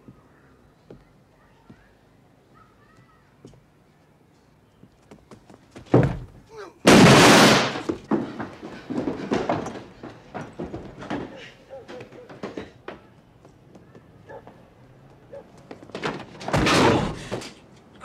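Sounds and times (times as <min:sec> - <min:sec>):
quieter knocks and thuds: 0:05.1 - 0:13.1, 0:15.6 - 0:17.4
loud bang: 0:06.9 - 0:08.0.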